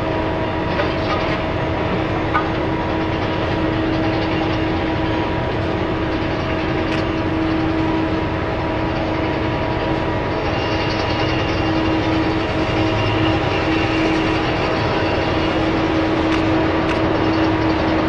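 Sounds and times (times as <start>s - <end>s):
diesel engine running hard: 0.0s - 18.0s
hydraulic whine: 0.0s - 18.0s.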